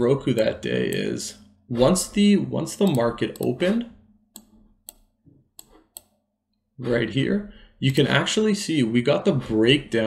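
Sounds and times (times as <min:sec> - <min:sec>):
computer mouse clicks: 0:02.8 - 0:03.6, 0:04.3 - 0:06.2.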